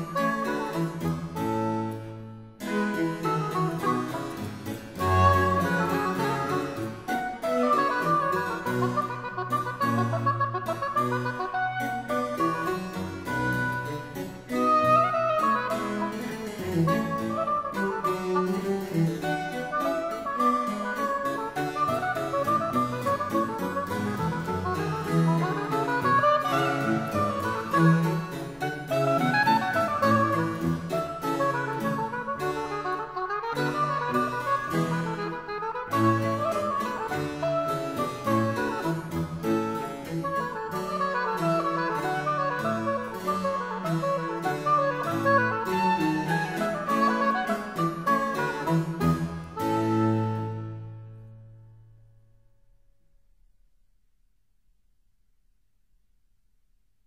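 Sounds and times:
chamber instruments with bass line: 0:00.0 - 0:51.9.

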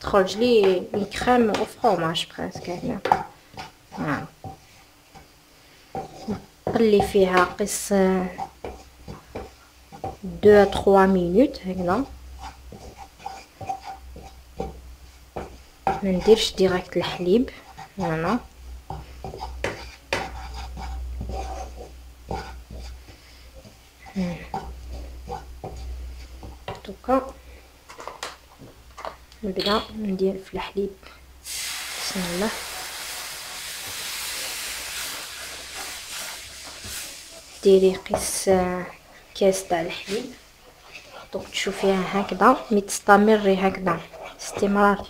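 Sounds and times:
wooden spatula scraping a pan: 0:00.0 - 0:27.3, 0:32.1 - 0:45.0.

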